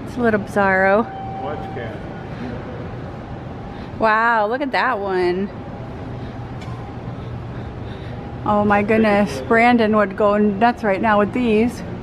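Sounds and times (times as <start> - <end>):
large hall room hum: 0.0 - 12.0.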